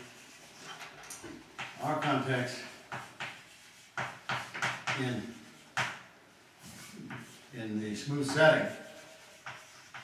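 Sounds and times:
chalk scratching on chalkboard: 0:00.0 - 0:00.6, 0:01.6 - 0:06.0, 0:06.6 - 0:10.0
man speaking: 0:07.5 - 0:08.8.

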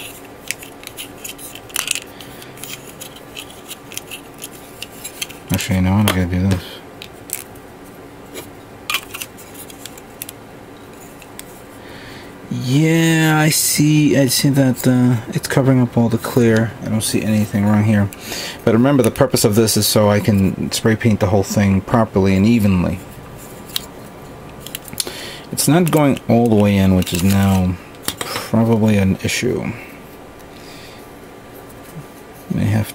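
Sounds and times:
plastic parts clicking: 0:00.4 - 0:05.4, 0:08.9 - 0:10.4.

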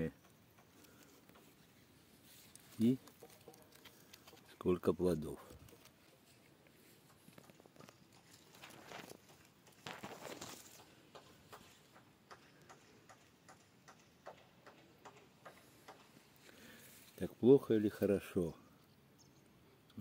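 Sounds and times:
soft ticks: 0:00.1 - 0:01.8, 0:06.6 - 0:08.4, 0:11.1 - 0:16.1
soft rustles: 0:00.8 - 0:04.7, 0:05.3 - 0:11.9.

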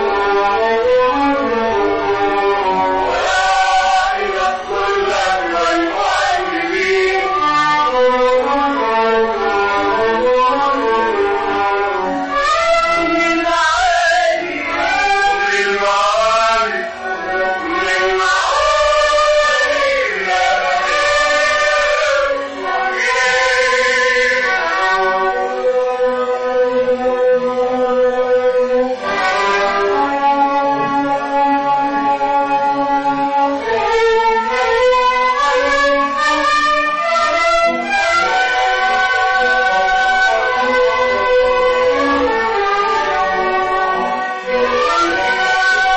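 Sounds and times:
bowed string ensemble: 0:00.0 - 0:45.9
vocal trio singing held notes: 0:02.9 - 0:08.0, 0:12.3 - 0:25.6.

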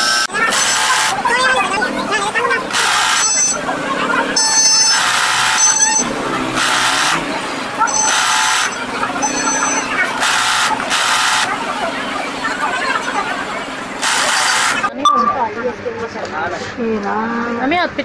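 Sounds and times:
sewing machine running in bursts: 0:00.0 - 0:14.9.

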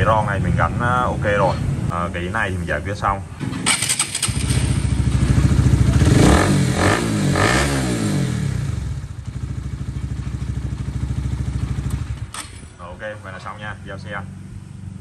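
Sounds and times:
motorcycle engine revving and idling: 0:03.4 - 0:15.0.

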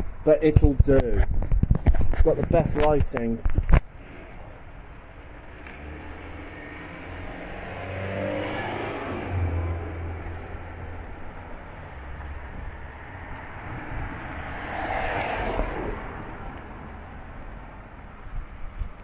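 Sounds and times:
car engine: 0:03.6 - 0:19.0
car swishing past: 0:04.0 - 0:17.8.

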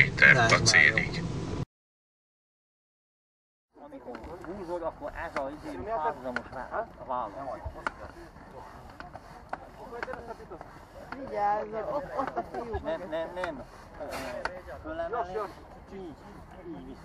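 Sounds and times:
people talking: 0:00.0 - 0:01.2, 0:03.8 - 0:17.0.

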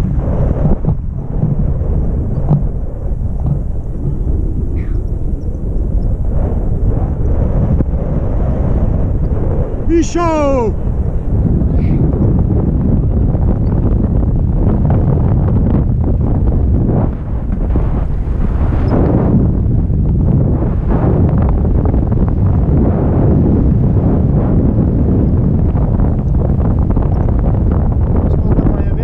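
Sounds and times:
wind rumbling on microphone: 0:00.0 - 0:29.0.

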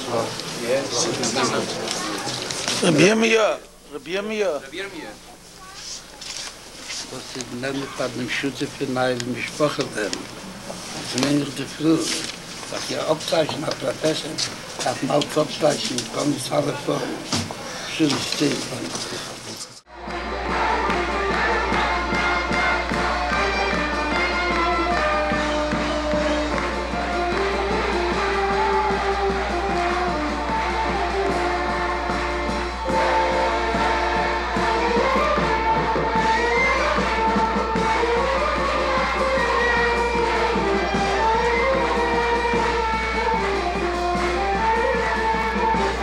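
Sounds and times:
group of voices singing: 0:19.9 - 0:46.0.

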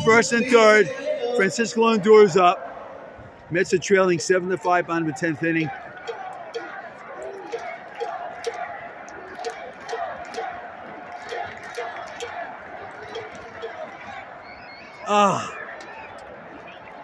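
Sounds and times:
crowd shouts: 0:00.0 - 0:17.0
murmur of crowd voices: 0:00.0 - 0:17.0
sharp claps: 0:07.5 - 0:14.0.

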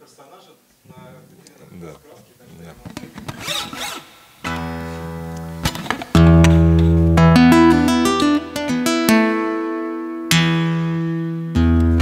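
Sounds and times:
acoustic guitar chord strummed: 0:04.4 - 0:12.0.

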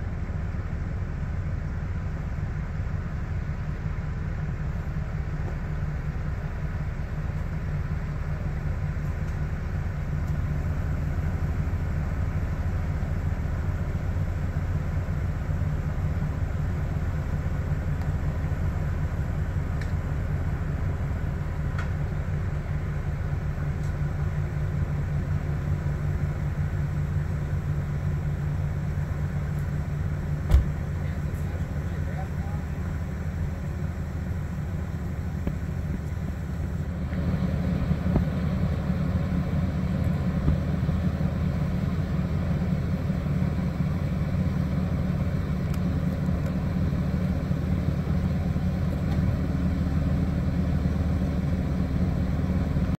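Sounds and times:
ship engine drone: 0:00.0 - 0:53.0
single knock: 0:30.5 - 0:30.7.

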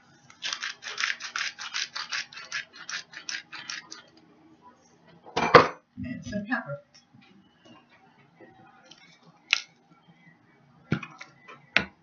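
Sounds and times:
salt shaker shaking: 0:00.3 - 0:04.1.

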